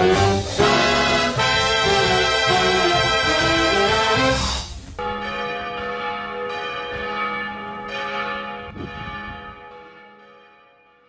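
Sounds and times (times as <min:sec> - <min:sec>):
brass orchestral music: 0:00.0 - 0:05.4
church bells ringing: 0:00.0 - 0:11.0.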